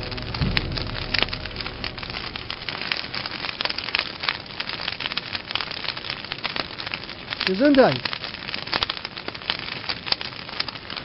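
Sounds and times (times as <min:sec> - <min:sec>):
buildings breaking apart: 0:00.0 - 0:11.0
falling debris clattering: 0:00.0 - 0:11.0.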